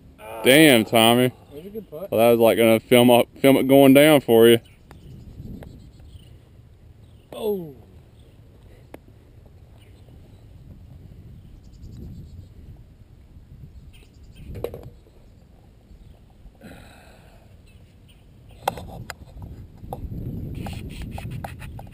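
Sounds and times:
wind rumble on microphone: 0:04.8 - 0:07.2, 0:09.6 - 0:16.2, 0:18.6 - 0:21.9.

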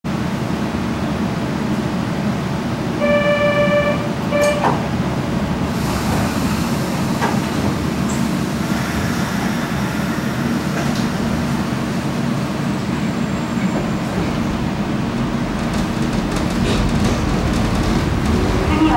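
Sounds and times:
train car low rumble: 0:00.0 - 0:18.9
train horn: 0:03.0 - 0:04.8.

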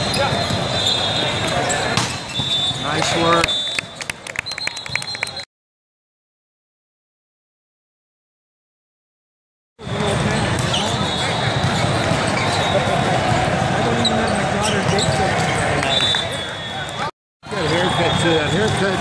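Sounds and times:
volleyballs struck and bouncing: 0:01.4 - 0:03.9
many voices talking and calling: 0:09.8 - 0:19.0.

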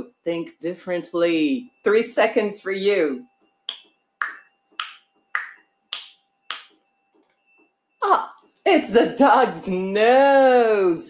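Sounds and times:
faint steady tone: 0:00.0 - 0:10.9.

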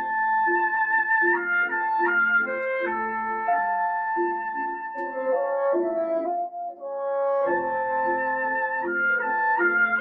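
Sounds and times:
bassoon: 0:00.0 - 0:10.0
piano: 0:00.0 - 0:10.0
woodwind notes: 0:00.0 - 0:10.0.

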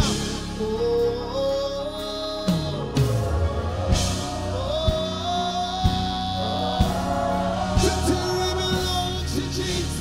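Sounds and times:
gospel band playing: 0:00.0 - 0:10.0
singers holding long notes: 0:00.0 - 0:10.0.

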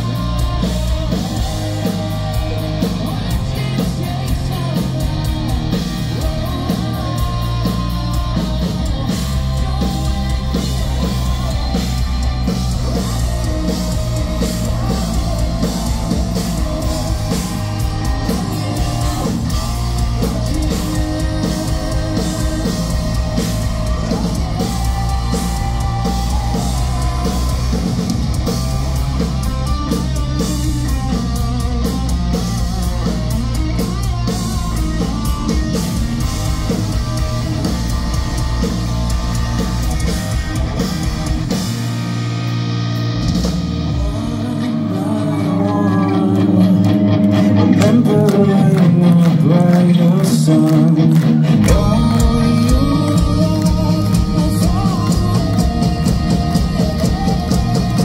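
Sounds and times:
bass guitar: 0:00.0 - 0:58.0
drum kit: 0:00.0 - 0:58.0
electric guitars: 0:00.0 - 0:58.0.

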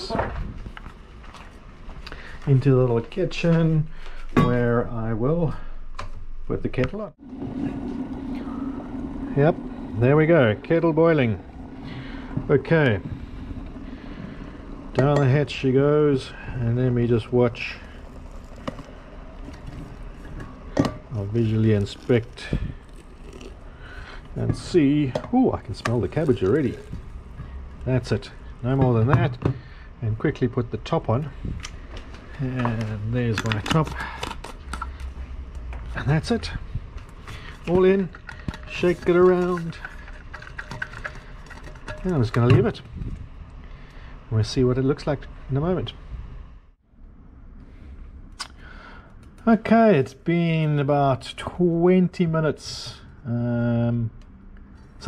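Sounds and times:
background room noise: 0:00.0 - 0:55.0
water pouring into a flask: 0:25.6 - 0:27.8.

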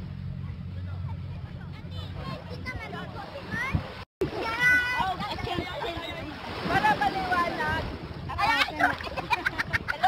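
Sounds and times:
woman laughing and squealing: 0:08.6 - 0:10.0.

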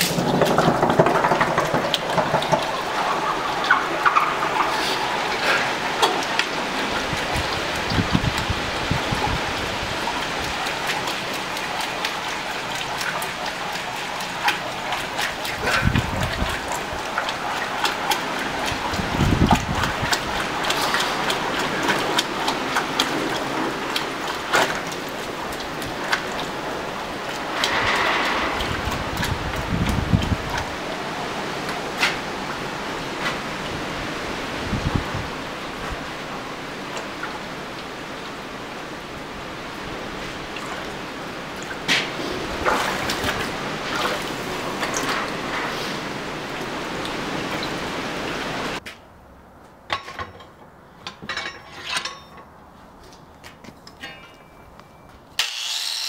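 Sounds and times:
liquid sloshing: 0:00.0 - 0:38.4, 0:39.2 - 0:48.8.

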